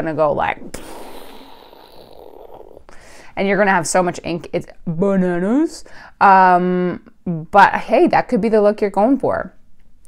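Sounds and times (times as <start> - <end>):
woman's raspy vocal effect: 0.6 - 3.2.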